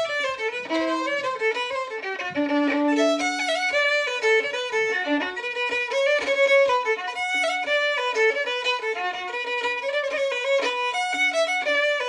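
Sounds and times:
solo fiddle playing fast jig: 0.0s - 12.0s.

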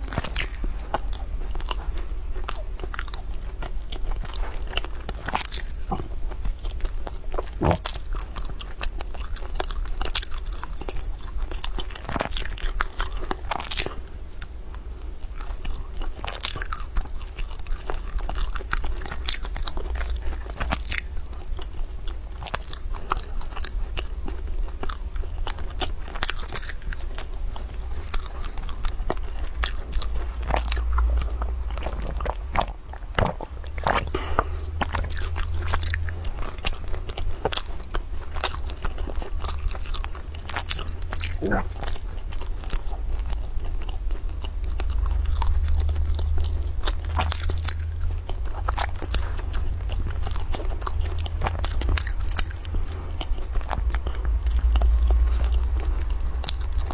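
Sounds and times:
biting and chewing pastry: 0.0s - 56.9s.

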